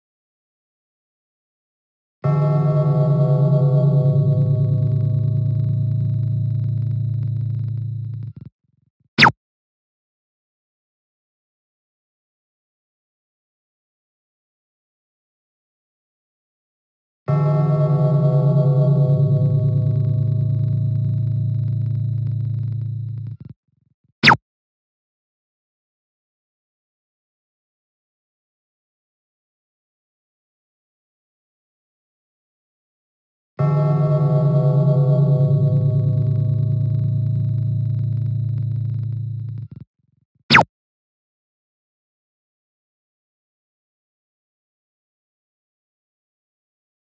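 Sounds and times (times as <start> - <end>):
gong-like ringing tone: 2.2 - 8.3, 17.3 - 23.3, 33.6 - 39.6.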